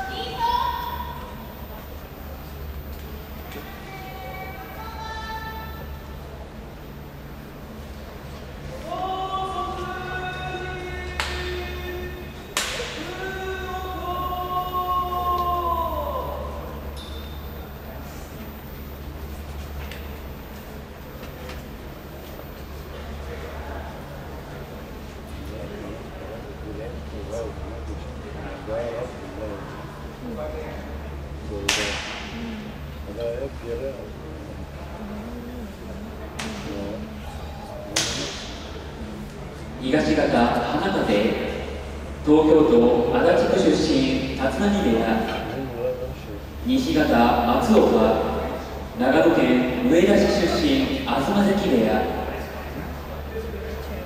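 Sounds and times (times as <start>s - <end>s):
sharp slaps: 11.2s - 11.5s, 12.5s - 13.1s, 31.6s - 32.4s, 36.4s - 36.8s, 37.9s - 38.7s
hand slapping bare skin: 31.7s - 32.3s, 37.9s - 38.5s.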